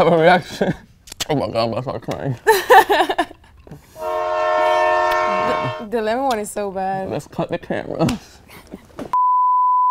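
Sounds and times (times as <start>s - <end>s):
person laughing: 2.5s - 3.4s
steam train whistle: 4.0s - 5.8s.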